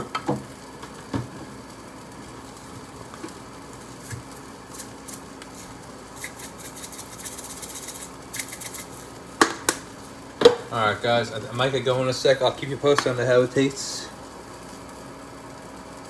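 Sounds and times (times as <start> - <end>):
patties sizzling in a pan: 0.0 - 16.0.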